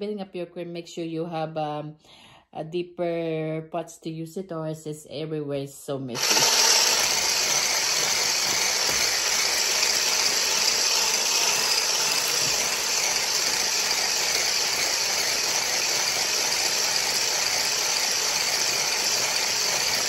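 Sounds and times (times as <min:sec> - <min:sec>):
electric blender whisking: 0:06.1 - 0:20.0.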